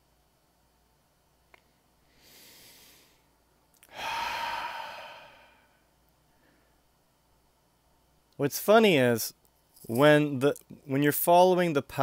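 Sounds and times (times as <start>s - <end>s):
man sighing: 3.8s - 5.8s.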